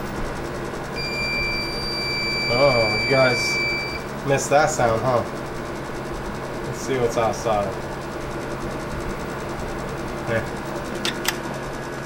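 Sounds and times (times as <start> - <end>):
low background hum: 0.0 - 12.0
high-pitched steady tone: 1.0 - 4.4.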